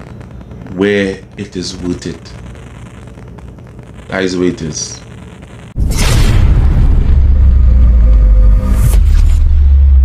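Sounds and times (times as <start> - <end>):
deep boom with low rumble: 5.8 - 10.0.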